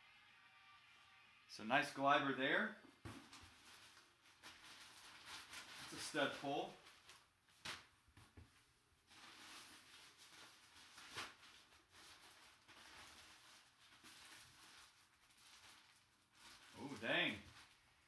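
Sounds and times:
rustling of cloth bag and plastic: 3.1 - 7.9, 8.5 - 18.0.

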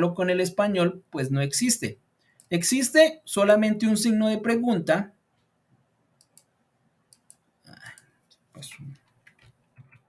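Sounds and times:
computer mouse clicks: 6.2 - 6.5, 7.1 - 8.4.

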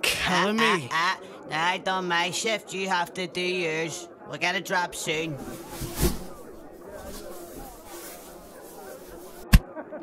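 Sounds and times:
muffled chatter of voices: 0.0 - 10.0.

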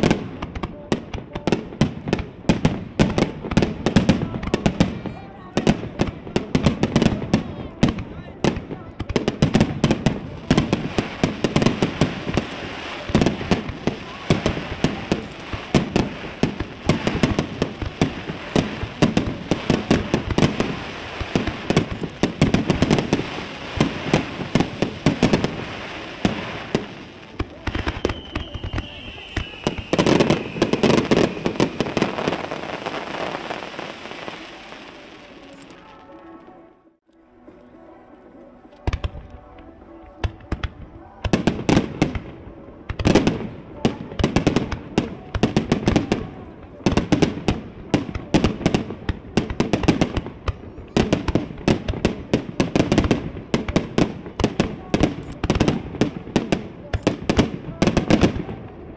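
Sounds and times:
firework crackling: 0.0 - 36.8, 38.8 - 58.9
falling firework whistle: 27.8 - 33.4.

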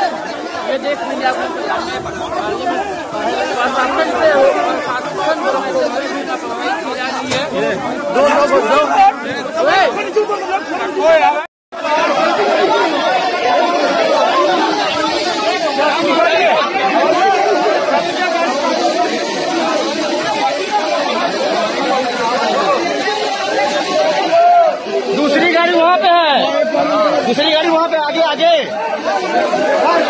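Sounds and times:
overlapping crowd chatter: 0.0 - 30.0.

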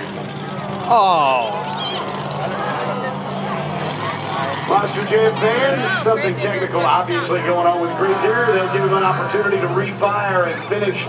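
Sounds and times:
faint crowd voices: 0.0 - 11.0
truck engine idling: 0.0 - 11.0.

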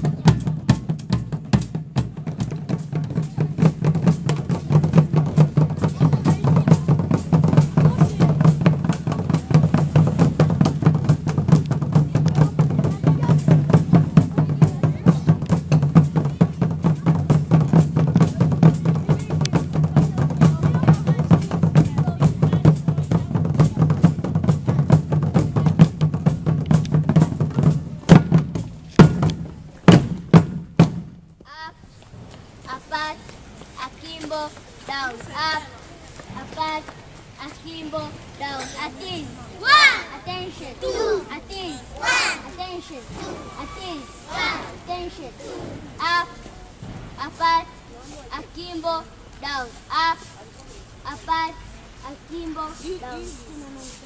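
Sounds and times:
marching drums: 0.0 - 31.4, 32.1 - 50.2.

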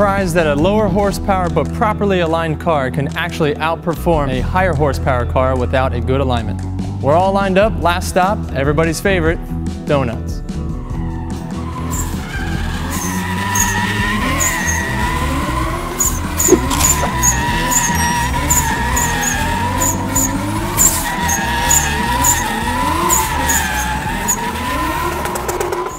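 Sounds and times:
tire squeal: 10.8 - 25.9
car engine revving: 11.8 - 25.9.

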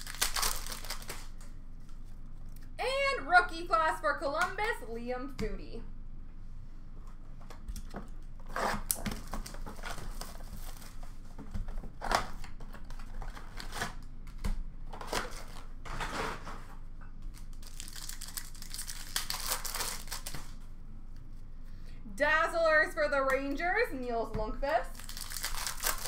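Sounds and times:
wrapper and cardboard ripping: 0.0 - 1.4, 17.3 - 20.6, 24.9 - 26.0
foil packs crinkling: 0.0 - 1.5, 17.3 - 20.6, 24.9 - 26.0.

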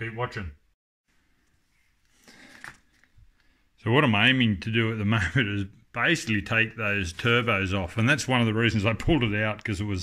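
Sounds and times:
man speaking: 0.0 - 0.6, 3.8 - 10.0.

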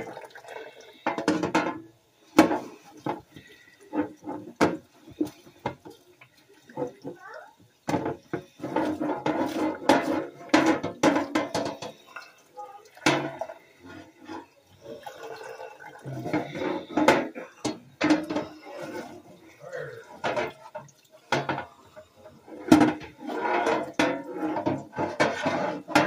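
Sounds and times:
tap water splashing: 0.0 - 1.8, 2.4 - 19.5, 20.1 - 26.0
dishes clattering: 1.0 - 6.0, 7.8 - 12.4, 13.0 - 26.0.

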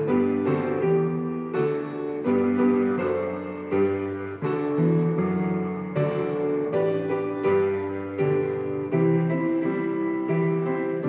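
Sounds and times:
piano playing hymn chords: 0.0 - 11.0.

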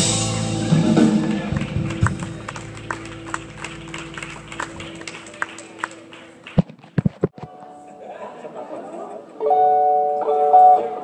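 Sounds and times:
sparse clapping: 1.2 - 7.3.

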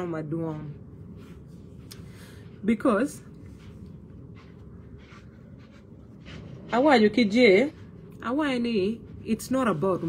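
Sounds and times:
woman speaking: 0.0 - 0.9, 2.6 - 3.4, 6.7 - 10.0
low background noise: 0.0 - 10.0
faint soft rustles: 0.7 - 10.0.

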